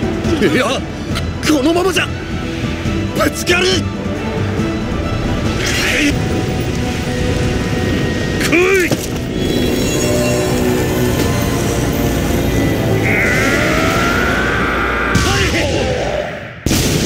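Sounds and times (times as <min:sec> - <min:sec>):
dramatic orchestral score: 0:00.0 - 0:17.0.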